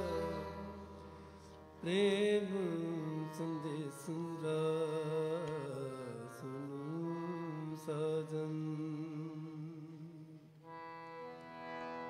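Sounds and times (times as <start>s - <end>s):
person singing long notes: 0.0s - 6.2s
harmonium: 0.0s - 12.0s.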